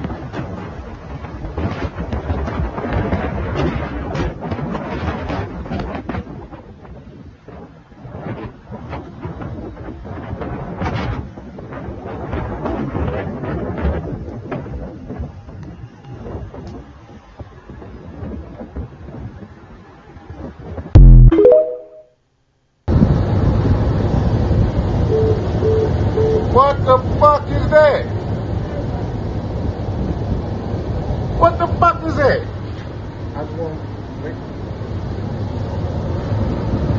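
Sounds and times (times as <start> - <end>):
low rumble with crackling: 0.0 - 21.3
vehicle rumble: 22.9 - 36.9.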